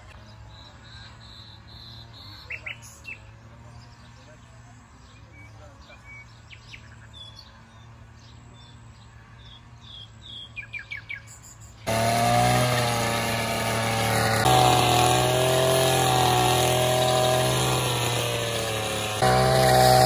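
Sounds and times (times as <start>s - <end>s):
birds chirping: 0.0s - 20.0s
string trimmer cutting weeds: 11.8s - 20.0s.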